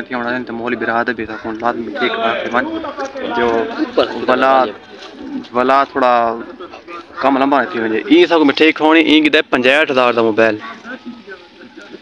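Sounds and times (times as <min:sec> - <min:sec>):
man speaking: 0:00.0 - 0:12.0.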